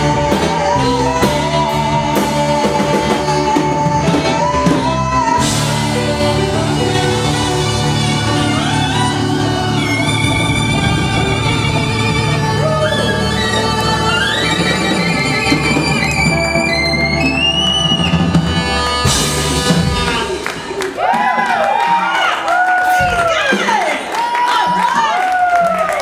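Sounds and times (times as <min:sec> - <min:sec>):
lead guitar bending notes: 0:00.0 - 0:21.0
rock band playing ballad: 0:00.0 - 0:22.2.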